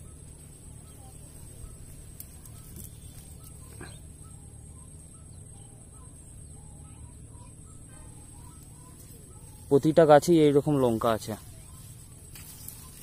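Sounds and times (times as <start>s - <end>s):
faint bird calls: 0.0s - 13.0s
low steady hum: 0.0s - 13.0s.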